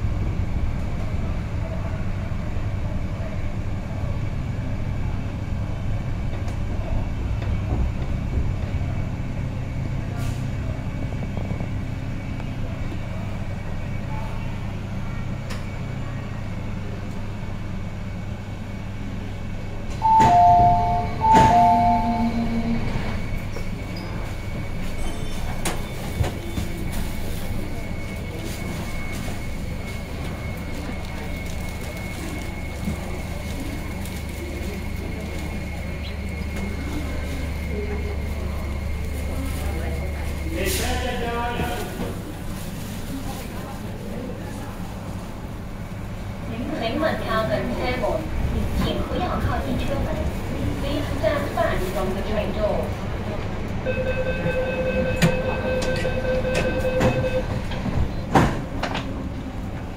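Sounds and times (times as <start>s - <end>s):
train rumbling: 0.0s - 59.9s.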